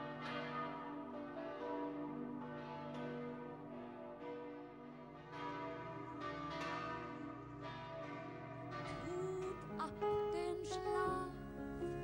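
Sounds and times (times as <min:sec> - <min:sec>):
church bells ringing: 0:00.0 - 0:12.0.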